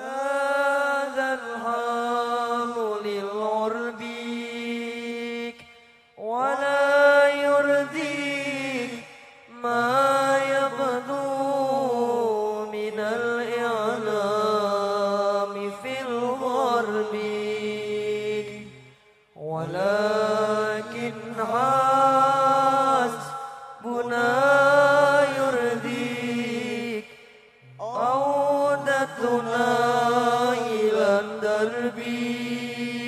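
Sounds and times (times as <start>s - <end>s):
person singing devotional song: 0.0s - 33.0s.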